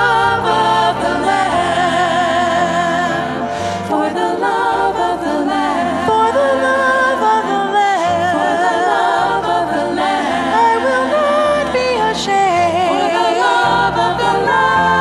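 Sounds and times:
women singing in harmony: 0:00.0 - 0:15.0.

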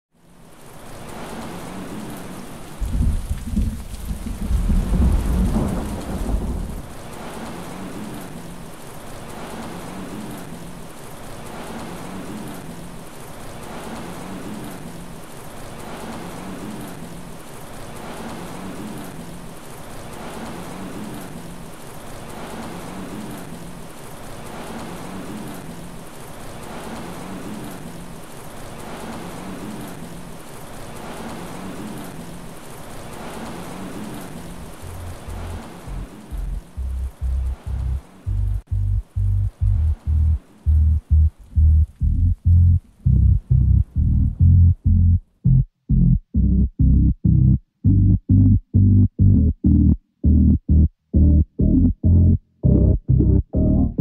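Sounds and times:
steady rain falling: 0:00.1 - 0:45.4
low rumble of thunder: 0:02.8 - 0:08.6, 0:33.1 - 0:54.0.

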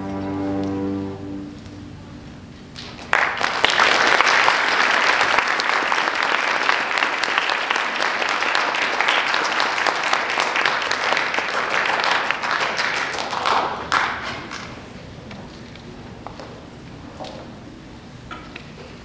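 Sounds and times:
orchestra notes: 0:00.0 - 0:02.5
audience applause: 0:02.8 - 0:14.8.

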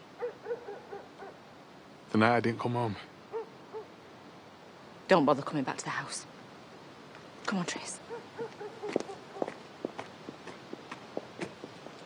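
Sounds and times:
owl hooting: 0:08.0 - 0:09.6.

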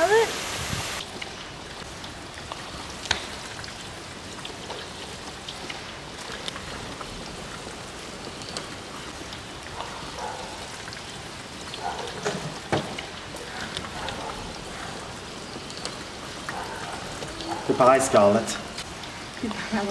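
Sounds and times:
steady rain falling: 0:00.0 - 0:19.9
small drip ticks: 0:01.0 - 0:12.3, 0:12.9 - 0:17.7.

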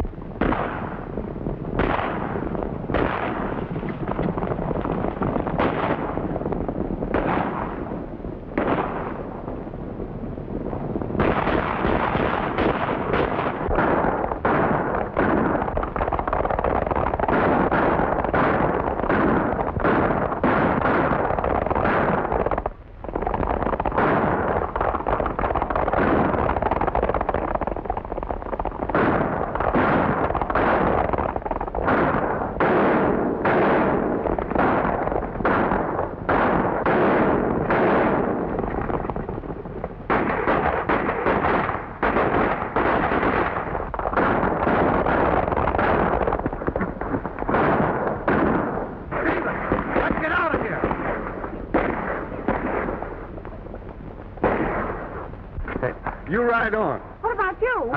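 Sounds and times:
gunshots: 0:00.0 - 0:01.1, 0:01.7 - 0:09.5, 0:11.1 - 0:57.9
horses galloping: 0:03.0 - 0:06.9, 0:14.4 - 0:32.8, 0:34.4 - 0:54.6.

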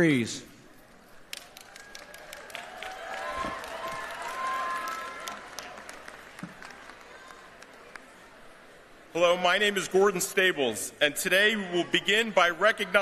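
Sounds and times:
audience applauding: 0:01.3 - 0:08.2.

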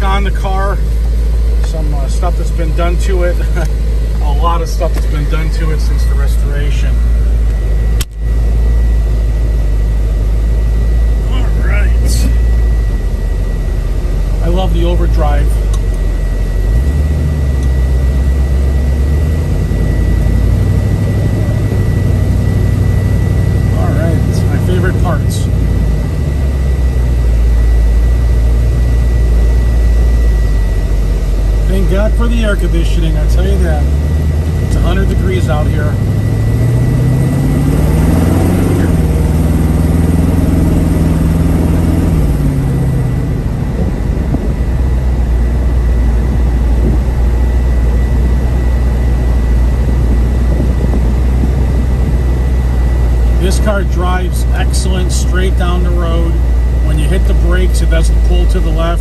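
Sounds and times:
car engine rumble from inside cabin: 0:00.0 - 0:59.0.

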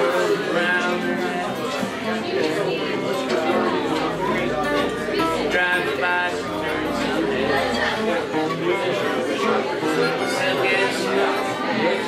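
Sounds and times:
acoustic guitars: 0:00.0 - 0:12.0
fiddle playing: 0:00.0 - 0:12.0
voices over music: 0:00.0 - 0:12.0.

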